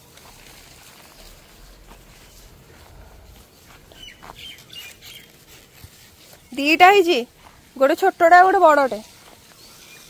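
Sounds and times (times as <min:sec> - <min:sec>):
low rumble: 0:00.2 - 0:04.4
faint bird chirps: 0:03.4 - 0:05.3.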